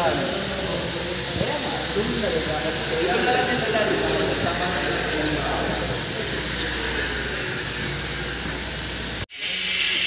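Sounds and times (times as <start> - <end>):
hissy running noise: 0.0 - 10.0
machinery noise with high whine: 0.0 - 10.0.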